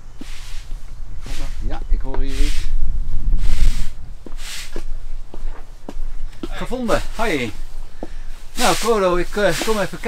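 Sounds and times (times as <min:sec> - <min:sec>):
wind rumbling on microphone: 0:00.0 - 0:10.0
footsteps on muddy path: 0:04.2 - 0:10.0.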